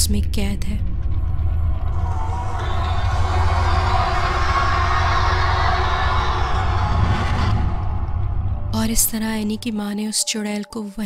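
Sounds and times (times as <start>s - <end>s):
low horror music drone: 0.0s - 11.0s.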